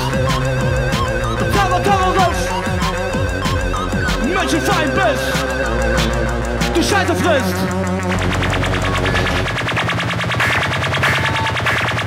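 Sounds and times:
fast electronic pulse: 0.0s - 12.0s
sustained synth bass: 0.0s - 12.0s.

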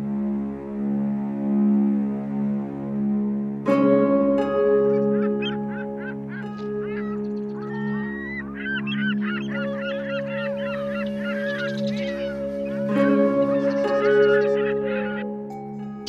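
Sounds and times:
slow background music: 0.0s - 16.0s
flock of birds calling: 4.4s - 15.4s.

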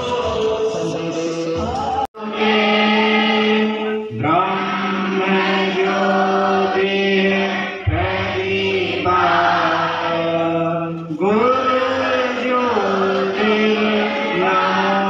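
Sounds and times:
slow chant-like singing: 0.0s - 15.0s.

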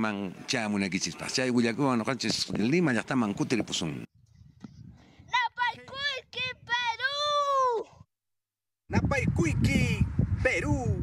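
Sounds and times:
child calling out: 5.3s - 8.0s.

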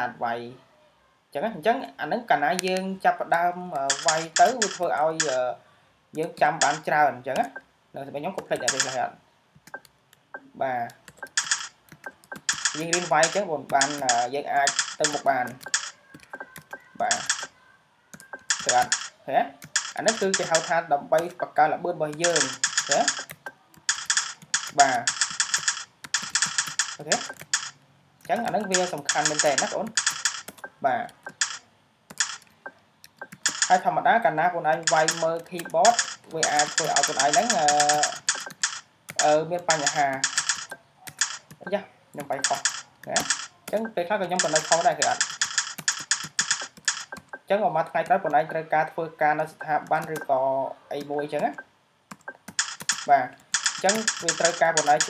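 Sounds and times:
person talking: 1.3s - 9.2s, 10.4s - 11.6s, 12.6s - 25.4s, 26.2s - 31.6s, 33.2s - 51.7s, 53.0s - 55.0s
keyboard keystrokes: 3.8s - 5.4s, 6.2s - 7.6s, 8.4s - 10.4s, 11.0s - 21.4s, 22.1s - 33.8s, 34.7s - 48.6s, 49.6s - 50.3s, 51.4s - 55.0s.

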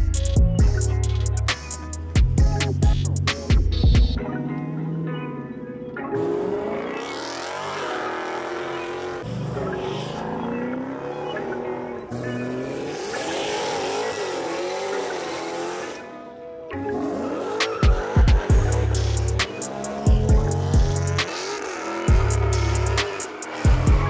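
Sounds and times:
car engine revving: 3.7s - 24.0s
car tyres squealing: 6.2s - 24.0s.

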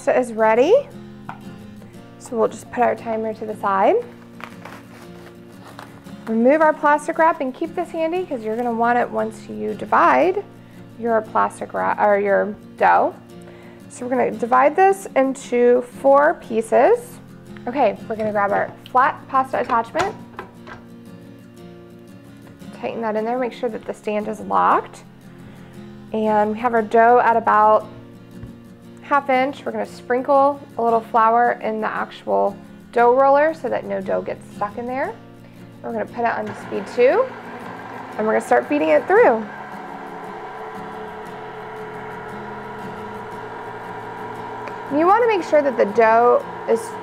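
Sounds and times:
quiet guitar music: 0.0s - 47.0s
stand mixer motor hum: 36.3s - 47.0s.

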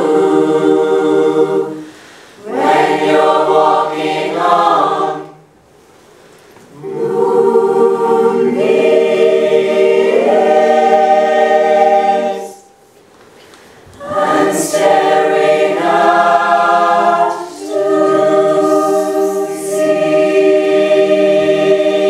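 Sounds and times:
mixed choir singing chords: 0.0s - 5.6s, 6.7s - 12.9s, 13.9s - 22.0s.

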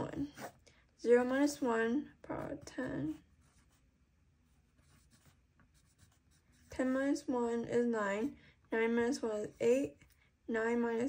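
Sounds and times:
pencil scratching on paper: 0.0s - 3.9s, 4.5s - 7.2s.

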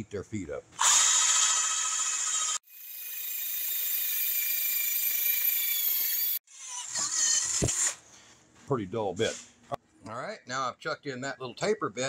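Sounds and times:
electric drill whining: 0.8s - 8.0s.

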